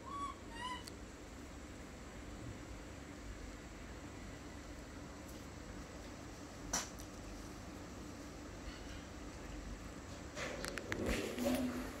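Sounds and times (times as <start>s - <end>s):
baby monkey coo calls: 0.0s - 0.9s.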